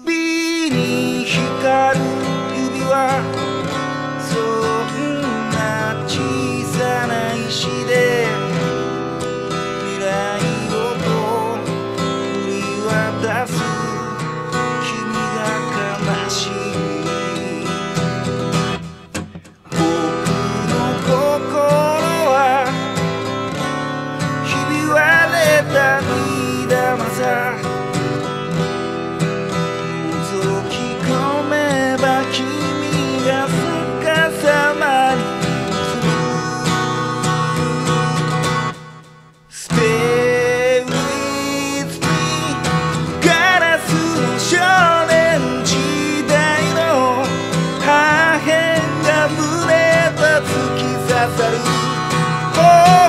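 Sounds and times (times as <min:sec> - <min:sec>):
man singing pop song: 0:00.0 - 0:18.9, 0:19.7 - 0:38.6, 0:39.5 - 0:53.0
acoustic guitar: 0:00.0 - 0:53.0.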